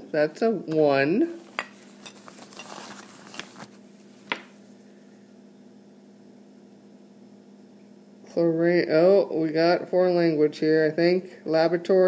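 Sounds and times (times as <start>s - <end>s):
steady low hum: 0.0s - 12.0s
rustling in a woven bag: 1.8s - 4.2s.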